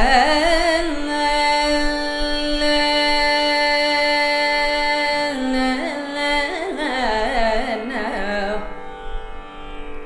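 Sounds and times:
woman singing ornamented melody: 0:00.0 - 0:08.8.

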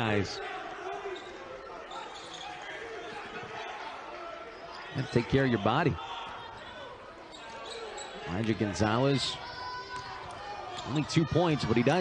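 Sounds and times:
court noise: 0:00.0 - 0:12.0.

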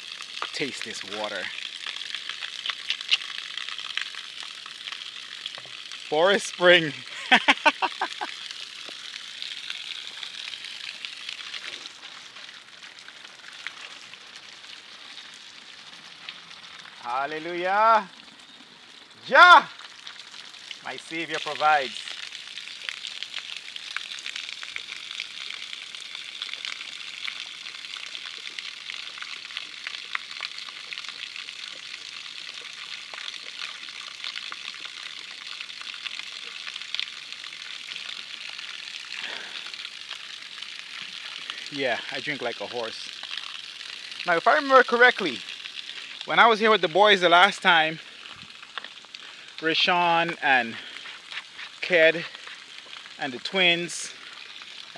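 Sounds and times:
small clicks and crackles: 0:00.0 - 0:06.0, 0:08.3 - 0:17.0, 0:22.0 - 0:41.7, 0:42.6 - 0:44.3, 0:48.1 - 0:53.2
water trickling: 0:00.0 - 0:54.9.

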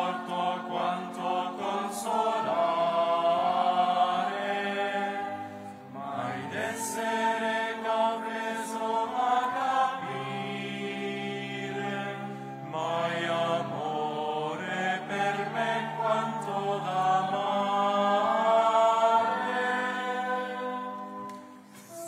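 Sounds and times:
voices singing liturgical chant: 0:00.0 - 0:21.4.

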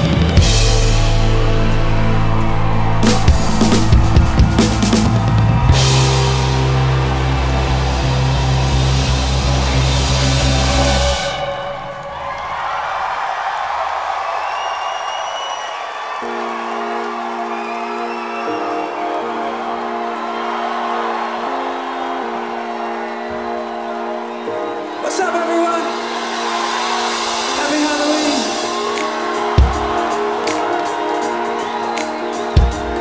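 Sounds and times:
live rock band chord: 0:00.0 - 0:12.0
sustained keyboard chords: 0:00.0 - 0:12.7
crowd cheering and whistling: 0:00.0 - 0:33.0.

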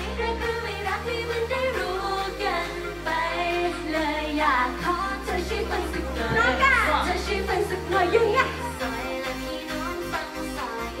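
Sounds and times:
electronic backing track: 0:00.0 - 0:11.0
woman singing into microphone: 0:00.0 - 0:11.0.

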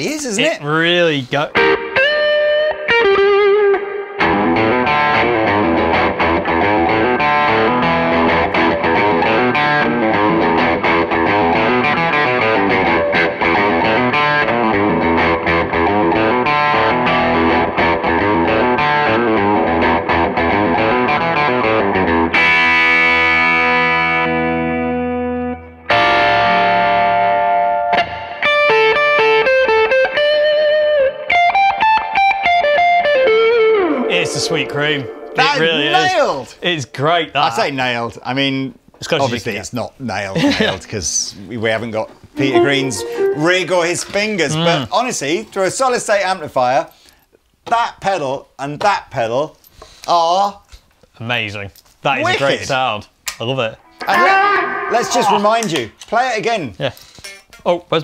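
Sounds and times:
overdriven electric guitar lead: 0:01.5 - 0:36.4, 0:42.4 - 0:44.1, 0:53.8 - 0:56.1.

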